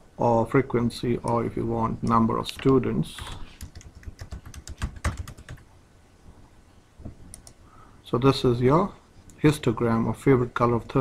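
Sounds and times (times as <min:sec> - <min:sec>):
computer keyboard typing: 0:02.6 - 0:05.6.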